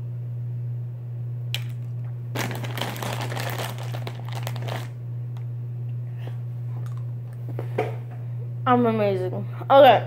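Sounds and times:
steady low hum: 0.0 - 10.0
plastic packaging crinkling: 1.6 - 5.0.

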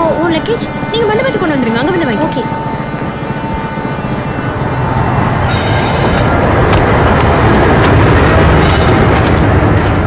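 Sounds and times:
train carriage rumbling on rails: 0.0 - 10.0.

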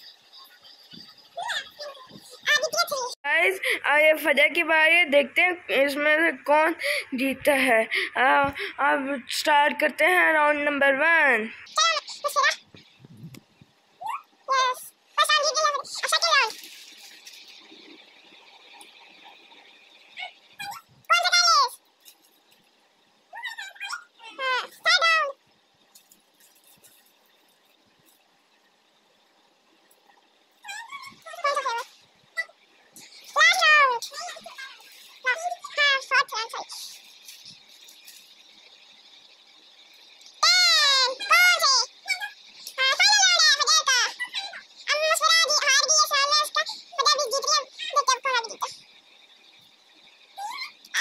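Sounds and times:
faint steady hiss: 0.0 - 51.0
child squealing: 30.7 - 31.8.

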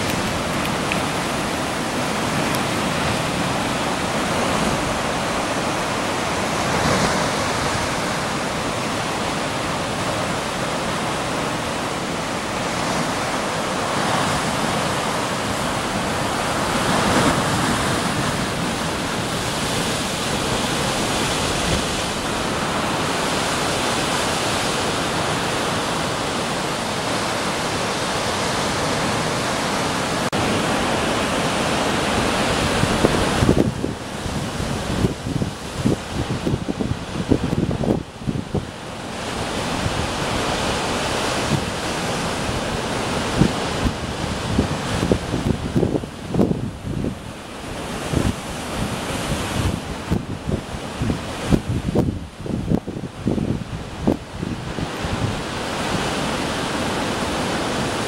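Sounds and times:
surf crashing against rocks: 0.0 - 58.0.

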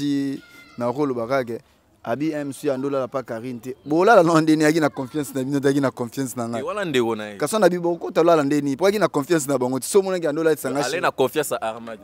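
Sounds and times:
man talking into microphone: 0.0 - 12.0.

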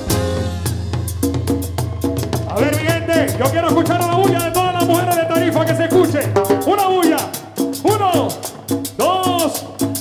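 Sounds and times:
latin dance orchestra playing: 0.0 - 10.0
quick percussion beat: 0.0 - 10.0.

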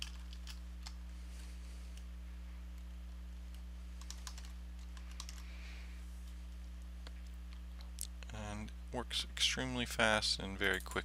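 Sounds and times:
keyboard typing: 0.0 - 1.0, 3.5 - 5.4
low electrical hum: 0.0 - 11.0.

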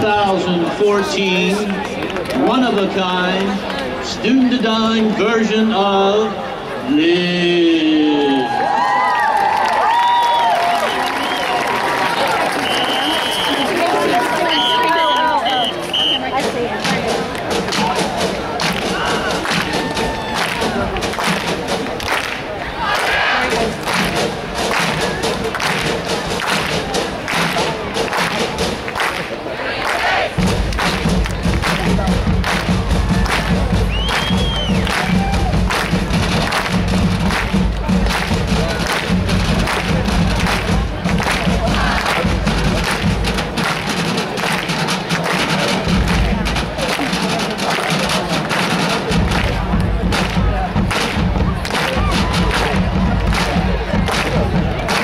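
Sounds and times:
marching band playing: 0.0 - 7.9, 9.9 - 55.0
drum beat: 12.6 - 22.4, 23.0 - 29.2, 30.1 - 55.0.

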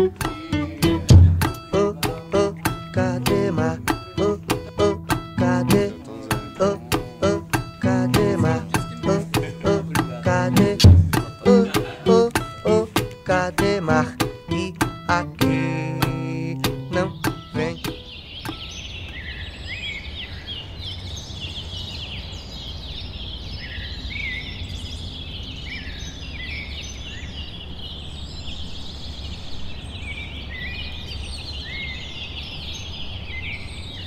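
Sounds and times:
small birds chirping: 0.0 - 34.0.

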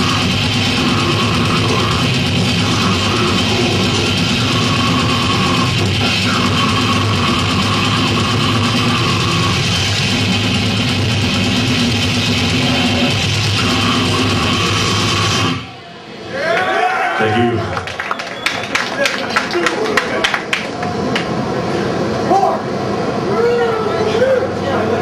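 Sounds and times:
fast drums: 0.0 - 15.6
bass guitar: 0.0 - 15.8
distorted electric guitars: 0.0 - 15.8.

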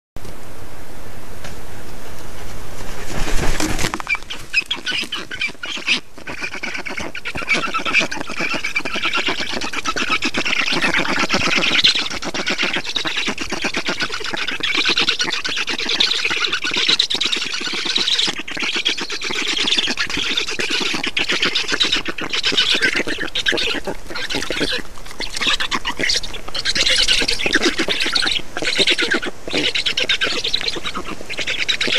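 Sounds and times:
stork nestlings raspy begging chatter: 3.8 - 31.9.

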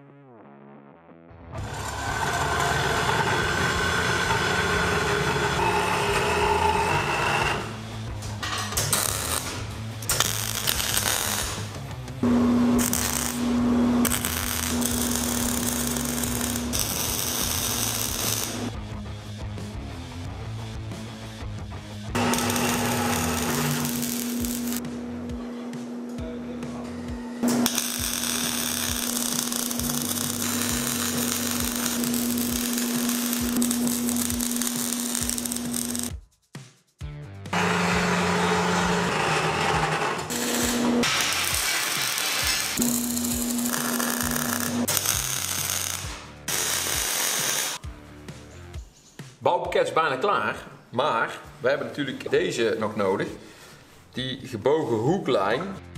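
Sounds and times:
background music: 0.0 - 55.9
welding arc crackling: 8.7 - 18.7, 22.2 - 24.9, 27.4 - 36.2, 40.3 - 47.8.

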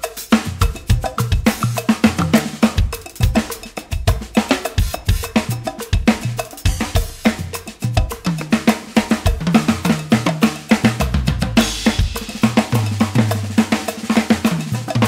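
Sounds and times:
clanking cowbell: 0.0 - 15.0
drum kit groove: 0.0 - 15.0.

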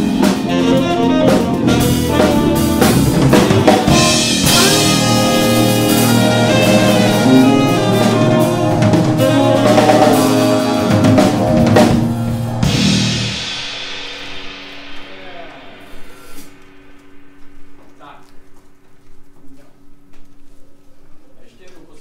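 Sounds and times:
jazz quartet playing: 0.0 - 21.2
cymbal ringing: 1.1 - 20.8.

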